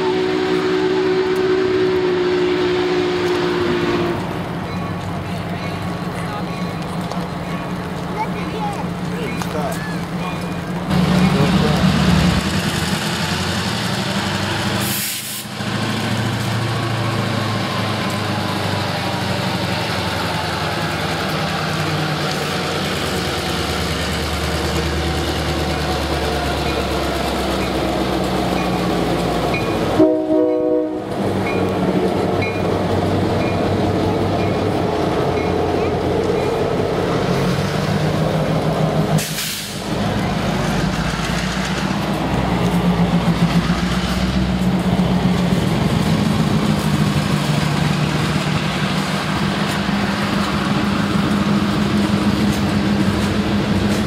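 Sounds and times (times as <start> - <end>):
freight train rumbling past: 0.0 - 54.0.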